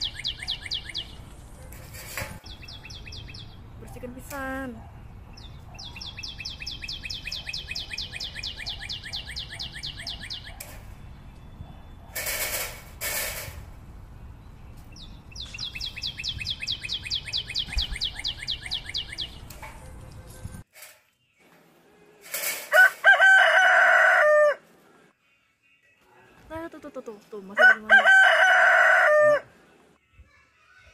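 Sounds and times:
rooster crowing: 0:22.7 - 0:24.7, 0:27.6 - 0:29.6.

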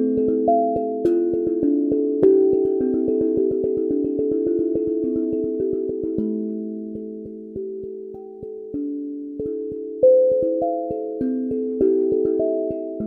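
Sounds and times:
steel tongue drum notes: 0:00.0 - 0:13.0.

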